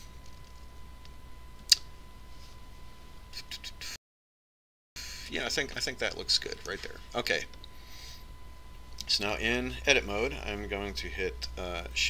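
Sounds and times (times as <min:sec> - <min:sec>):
low electrical hum: 0:00.0 - 0:04.0, 0:05.0 - 0:12.0.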